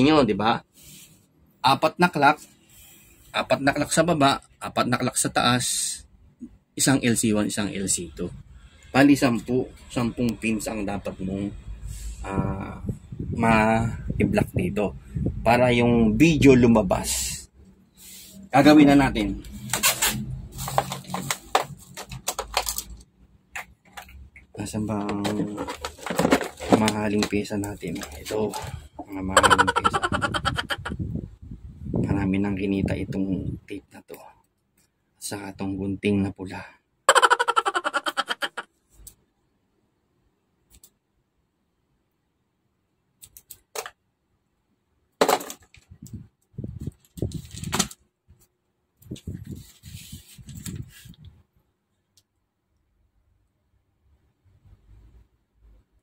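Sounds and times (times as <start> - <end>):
scrapes rustles and knocks: 25.0 - 28.8
person laughing: 29.3 - 31.0, 37.2 - 38.6.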